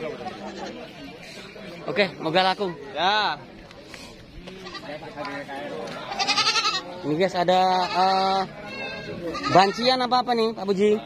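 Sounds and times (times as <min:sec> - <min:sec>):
goats bleating: 0:04.6 - 0:05.0, 0:06.0 - 0:07.0, 0:07.6 - 0:10.0.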